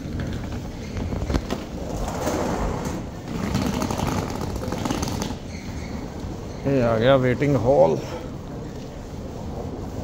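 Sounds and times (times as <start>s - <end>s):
suitcase wheels rattling on floor: 0.0s - 5.7s
large hall noise: 0.0s - 10.0s.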